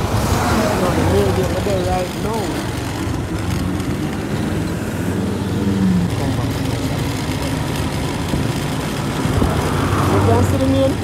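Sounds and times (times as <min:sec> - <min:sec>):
road noise: 0:00.0 - 0:11.0
surrounding traffic: 0:00.0 - 0:11.0
motorcycle engine running: 0:00.6 - 0:11.0.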